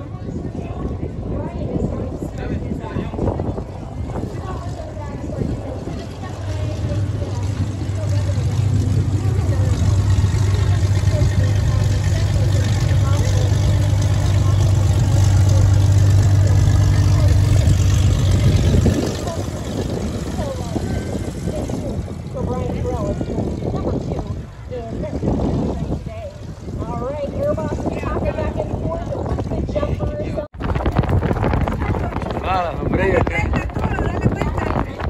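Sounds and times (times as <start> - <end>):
people's voices: 0.0 - 35.0
propeller plane engine drone: 3.3 - 27.8.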